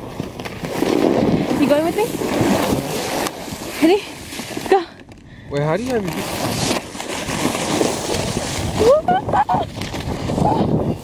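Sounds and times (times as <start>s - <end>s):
sled scraping on snow: 0.0s - 4.9s, 5.7s - 11.0s
wind on microphone: 6.2s - 11.0s.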